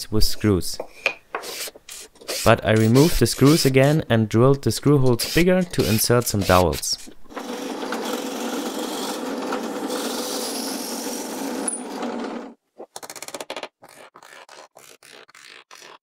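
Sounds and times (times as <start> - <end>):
drill boring into plywood: 1.5 - 3.8, 5.2 - 6.7.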